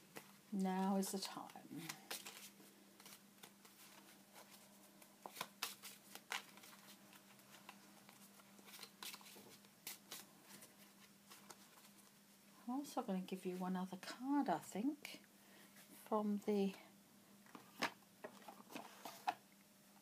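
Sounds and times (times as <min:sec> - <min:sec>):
low steady hum: 0:00.0 - 0:20.0
cards snapping and rustling: 0:01.8 - 0:04.1, 0:05.2 - 0:10.7.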